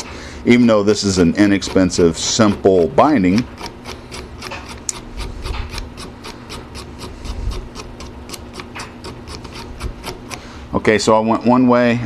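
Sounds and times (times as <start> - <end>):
knife scraping paper edges: 0.9 - 10.5.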